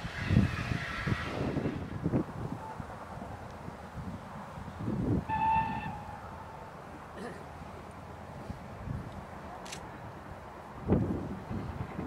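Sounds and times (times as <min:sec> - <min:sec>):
wind rumbling on microphone: 0:00.0 - 0:07.0, 0:08.2 - 0:12.0
steam locomotive whistle toot: 0:05.2 - 0:06.2.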